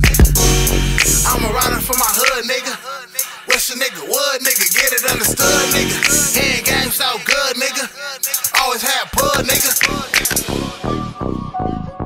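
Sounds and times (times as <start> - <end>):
deep bass: 0.0 - 2.1, 5.1 - 7.0, 9.2 - 12.0
rapping over a beat: 0.0 - 11.1
hip hop beat: 0.0 - 12.0.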